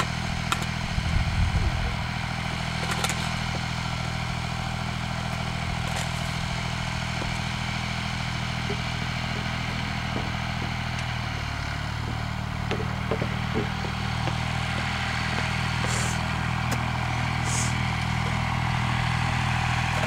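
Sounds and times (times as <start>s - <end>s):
tractor engine running: 0.0s - 20.0s.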